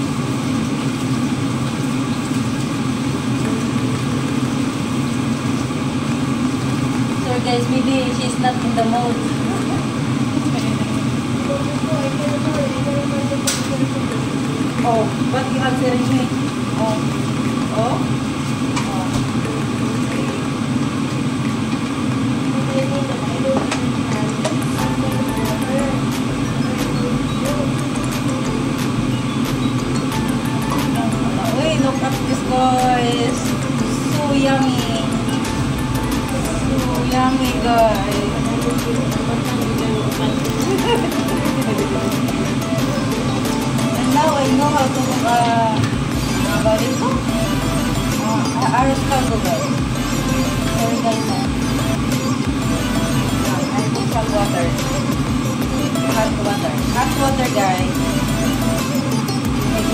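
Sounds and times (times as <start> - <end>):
range hood fan humming: 0.0 - 59.9
faint voices: 22.5 - 29.2, 30.2 - 52.4.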